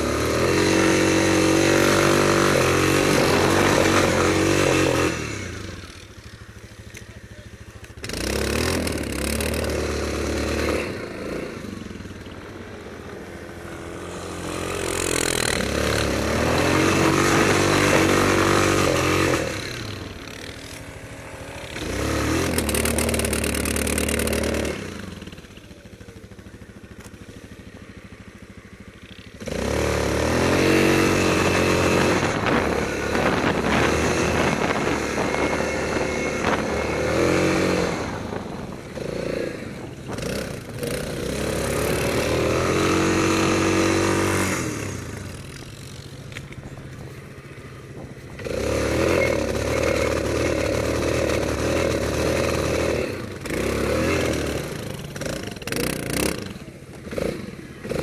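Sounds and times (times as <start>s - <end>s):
quad engine revving: 0.0s - 58.0s.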